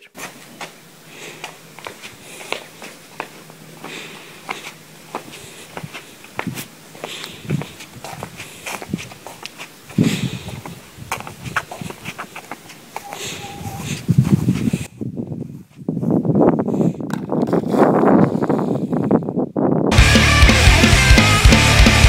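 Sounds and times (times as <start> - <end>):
footsteps on concrete: 0.1 - 14.9.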